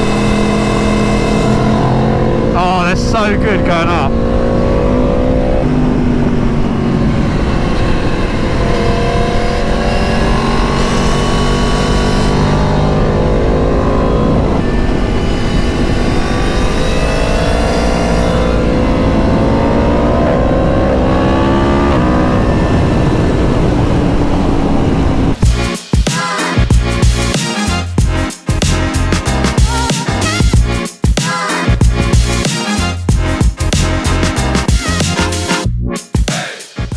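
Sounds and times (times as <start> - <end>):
motorcycle engine accelerating: 0.0 - 25.7
wind rush: 22.0 - 25.4.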